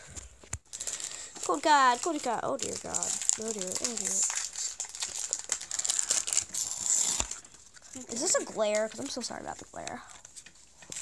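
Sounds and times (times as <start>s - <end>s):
foil wrappers crinkling: 0.6s - 11.0s.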